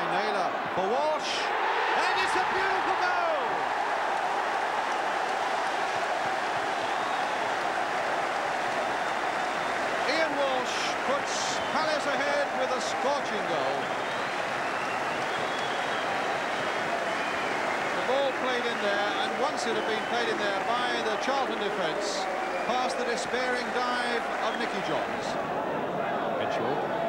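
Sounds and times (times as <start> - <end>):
crowd shouting and chanting: 0.0 - 27.0
scattered clapping: 3.6 - 25.4.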